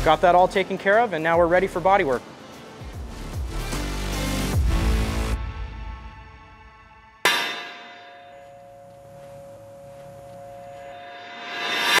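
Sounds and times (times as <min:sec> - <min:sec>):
music: 0:00.0 - 0:12.0
hammer blow on anvil: 0:07.3 - 0:12.0
metallic ring: 0:07.3 - 0:12.0.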